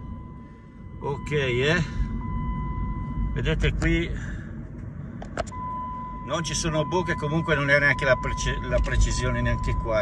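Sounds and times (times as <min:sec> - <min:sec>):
seatbelt warning tone: 0:00.0 - 0:03.9, 0:05.5 - 0:10.0
car cabin road noise: 0:00.0 - 0:10.0.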